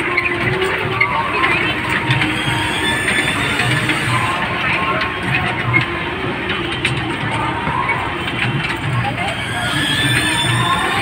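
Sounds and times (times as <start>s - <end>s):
kiddie train rattling on track: 0.0s - 11.0s
people's voices: 0.0s - 11.0s.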